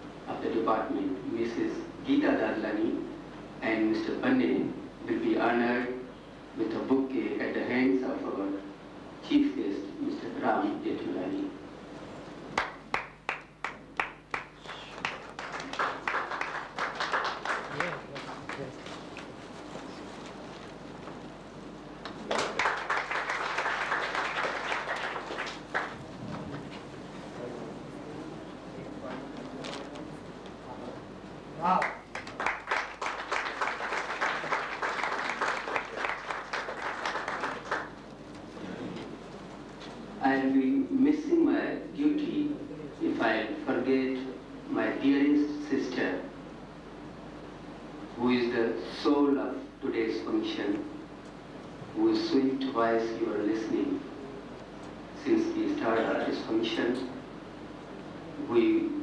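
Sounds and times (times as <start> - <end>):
audience clapping: 12.5 - 19.4, 22.0 - 26.8, 31.7 - 38.5.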